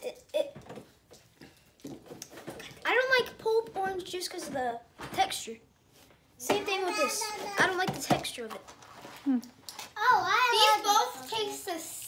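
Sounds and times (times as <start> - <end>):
child speaking: 0.0 - 0.6, 2.8 - 5.6, 6.4 - 8.6, 10.0 - 12.0.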